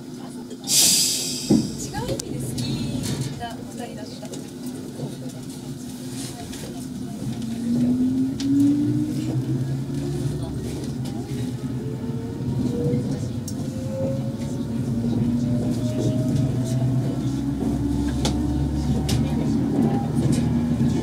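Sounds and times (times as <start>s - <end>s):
train running rumble: 0.4s - 21.0s.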